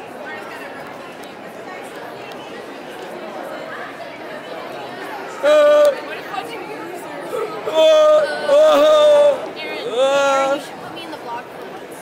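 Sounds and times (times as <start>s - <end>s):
crowd chatter echoing: 0.0s - 12.0s
loud held yell: 5.4s - 6.0s, 7.3s - 10.7s.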